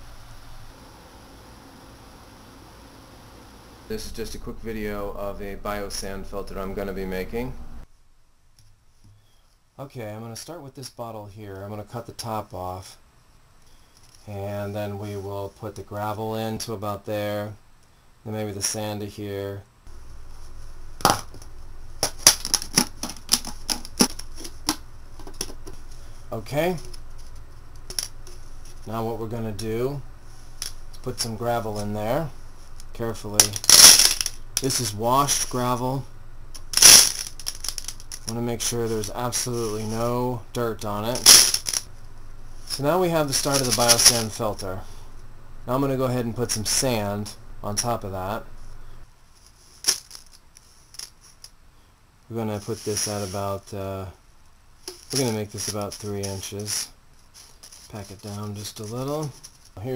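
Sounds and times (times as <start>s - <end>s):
plastic bottle crackling: 22.0s - 25.9s, 33.4s - 34.4s, 36.6s - 38.3s, 41.2s - 41.9s
sand rattling onto gravel: 36.7s - 40.1s, 41.1s - 41.9s, 42.7s - 44.6s.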